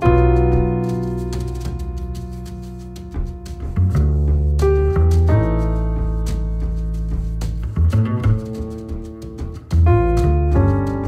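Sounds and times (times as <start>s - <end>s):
jazz piano: 0.0s - 11.0s
plucked upright bass: 0.0s - 11.0s.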